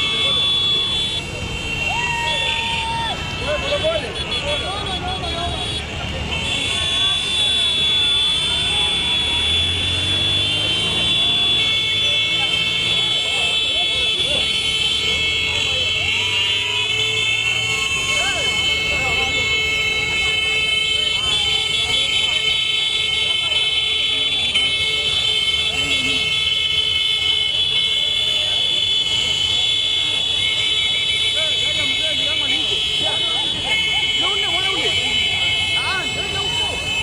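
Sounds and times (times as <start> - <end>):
crowd shouting and cheering: 0.0 - 7.3, 8.3 - 26.7, 30.1 - 37.0
motorcycle engines revving: 0.0 - 37.0
motorcycle horns tooting: 0.0 - 37.0.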